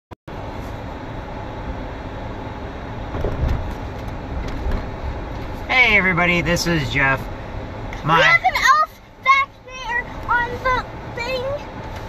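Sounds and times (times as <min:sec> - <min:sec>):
road and engine noise in car cabin: 0:00.3 - 0:12.0
man talking: 0:05.7 - 0:07.3.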